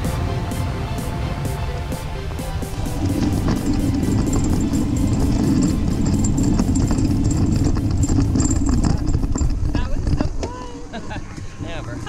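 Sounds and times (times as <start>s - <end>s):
background music with beat: 0.0s - 6.5s
wheels rattling over grass: 2.5s - 10.6s.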